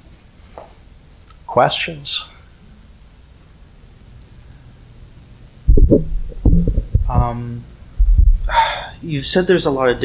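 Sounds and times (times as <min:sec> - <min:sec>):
microphone handling thumps: 0:05.7 - 0:08.5.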